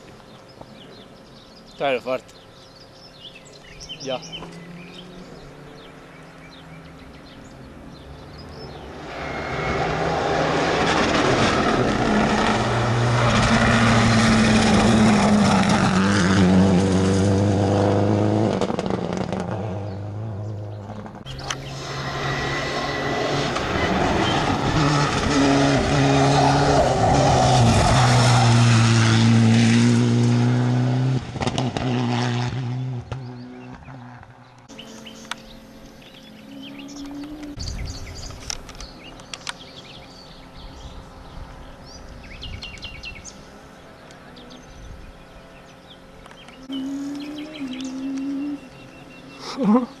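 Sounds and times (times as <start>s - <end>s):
rally cars passing at speed: 3.2s - 38.2s.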